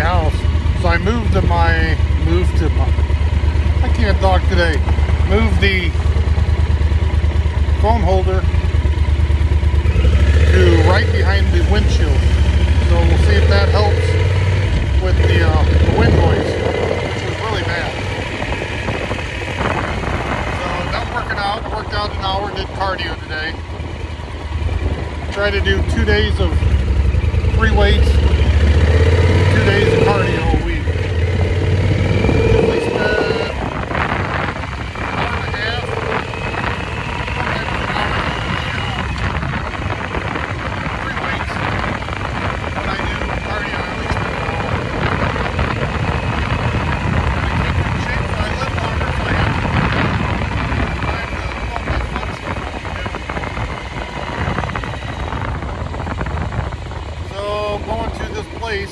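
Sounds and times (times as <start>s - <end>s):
motorcycle engine rumble: 0.0s - 58.9s
wind rush: 0.0s - 58.9s.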